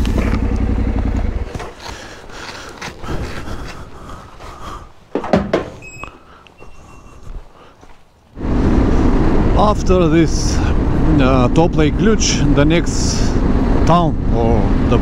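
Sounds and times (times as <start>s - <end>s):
motorcycle engine: 0.0s - 3.9s, 8.3s - 15.0s
knocks and clatter: 5.1s - 5.8s
sharp thunk: 5.1s - 5.8s.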